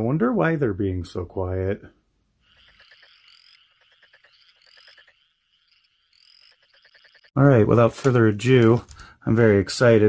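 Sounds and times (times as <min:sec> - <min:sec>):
frogs croaking: 0:02.4 - 0:07.4.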